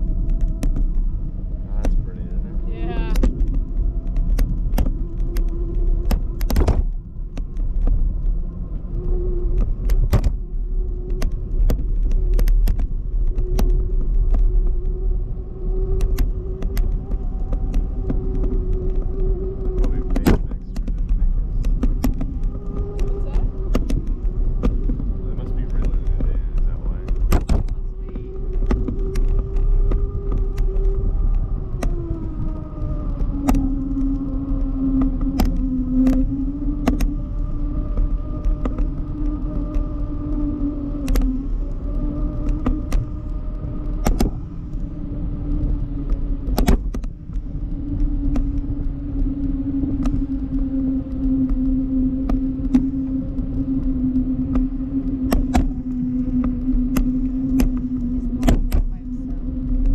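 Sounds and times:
steady humming tone: 0:00.0 - 0:59.9
wind rumbling on microphone: 0:00.0 - 0:59.9.

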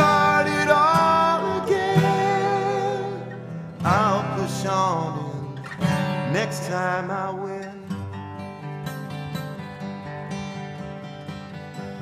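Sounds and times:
strummed acoustic guitar: 0:00.0 - 0:12.0.

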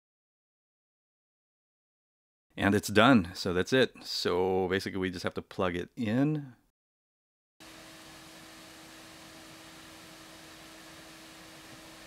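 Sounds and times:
fan running with airy hiss: 0:07.6 - 0:12.0.

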